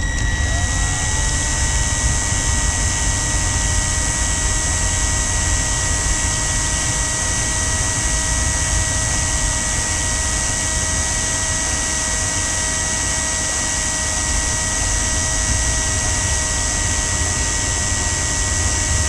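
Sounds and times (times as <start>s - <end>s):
power drill whining: 0.0s - 19.0s.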